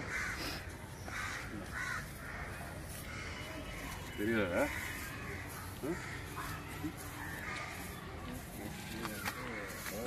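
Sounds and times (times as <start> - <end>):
bird harsh calls: 0.0 - 10.0.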